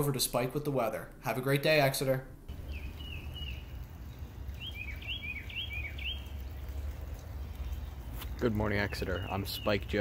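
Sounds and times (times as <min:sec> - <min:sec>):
low outdoor rumble: 0:02.2 - 0:10.0.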